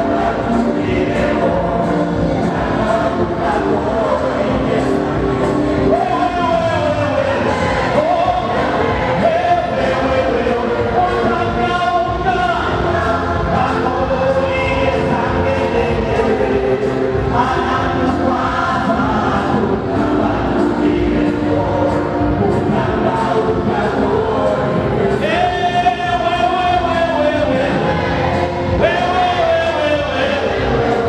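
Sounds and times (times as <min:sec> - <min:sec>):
amplified music: 0:00.0 - 0:31.0
group singing gospel song: 0:00.0 - 0:31.0
man singing into microphone: 0:00.0 - 0:31.0.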